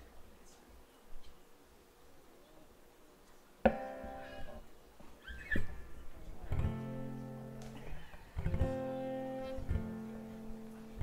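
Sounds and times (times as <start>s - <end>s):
acoustic guitar chord ringing: 3.7s - 4.6s.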